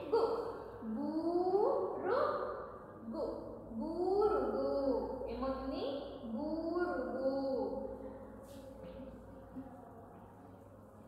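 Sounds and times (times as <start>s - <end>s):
woman speaking: 0.0s - 8.0s.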